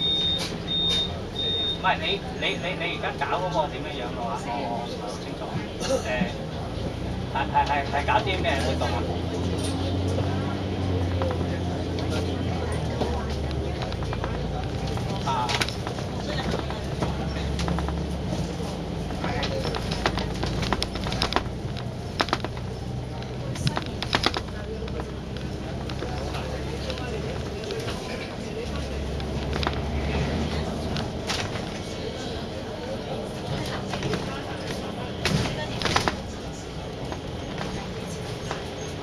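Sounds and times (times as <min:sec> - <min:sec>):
bus engine running: 0:00.0 - 0:39.0.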